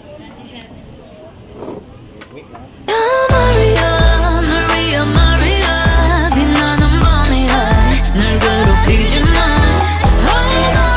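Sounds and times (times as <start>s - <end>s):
pop music with heavy beat: 3.2s - 10.9s.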